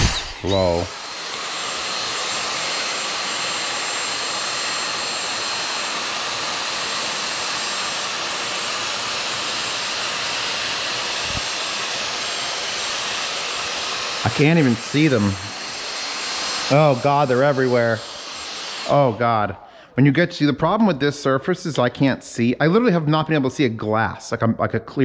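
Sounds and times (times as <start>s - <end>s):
vacuum cleaner whining: 0.0s - 20.9s.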